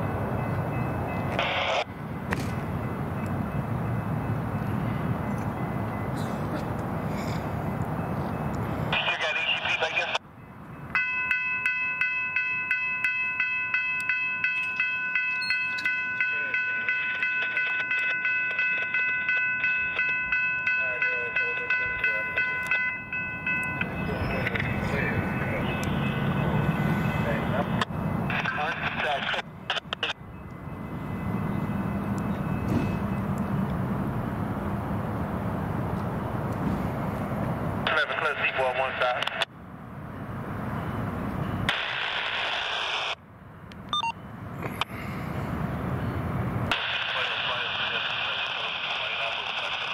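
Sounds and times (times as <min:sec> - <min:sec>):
railroad crossing bell ringing: 0:00.0 - 0:34.7, 0:40.0 - 0:41.8.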